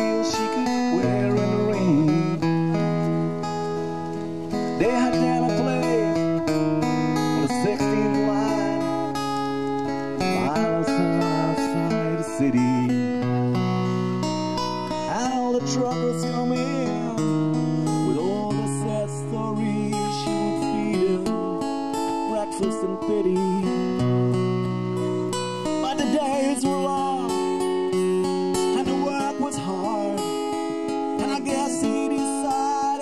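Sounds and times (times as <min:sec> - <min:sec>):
strummed acoustic guitar: 0:00.0 - 0:33.0.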